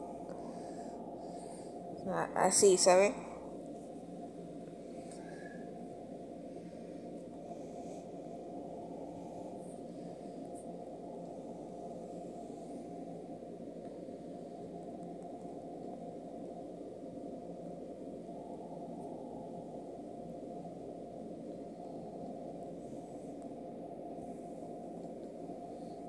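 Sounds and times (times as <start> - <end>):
low background hiss: 0.0 - 26.0.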